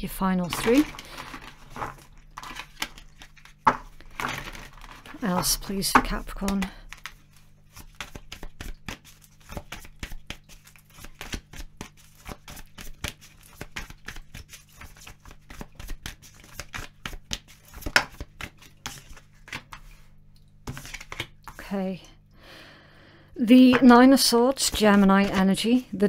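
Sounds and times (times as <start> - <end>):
cards being shuffled: 0.4 - 20.1, 20.7 - 21.6, 23.7 - 26.0.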